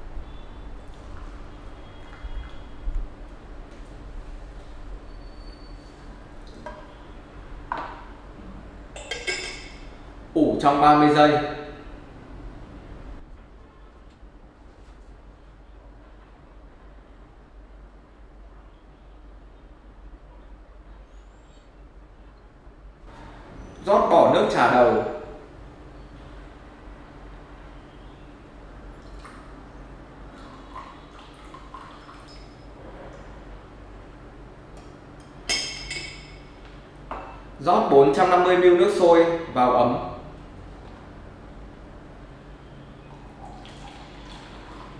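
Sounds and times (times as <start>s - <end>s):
glass clinking on glass: 9.0s - 9.8s, 32.2s - 32.7s, 35.5s - 36.5s
glass lid clinking on teapot: 9.0s - 9.8s
water trickling into bowl: 30.3s - 32.8s, 43.0s - 44.9s.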